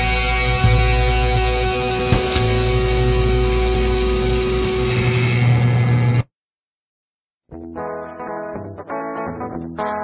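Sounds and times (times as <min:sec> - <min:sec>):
electric guitar and bass ringing: 0:00.0 - 0:06.3.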